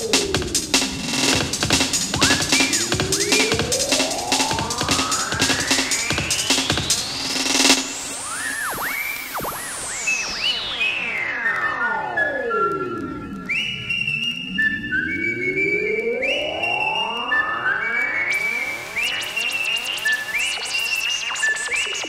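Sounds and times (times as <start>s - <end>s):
high percussion: 0.0s - 10.7s
synthesizer tone diving in pitch: 1.0s - 13.5s.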